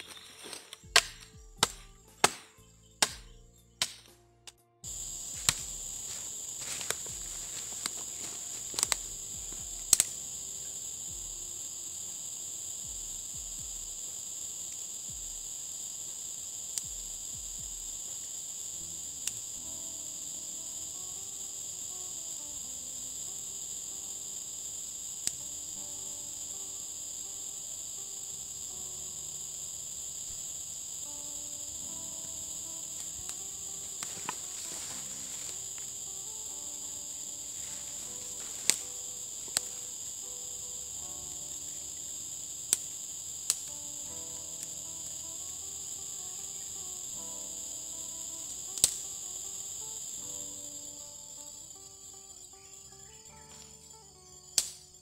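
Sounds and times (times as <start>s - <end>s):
insects shrilling: 0.0s - 4.2s, 4.8s - 55.0s
sharp snaps: 0.0s - 47.6s, 48.2s - 50.2s, 54.6s - 55.0s
faint background music: 0.0s - 55.0s.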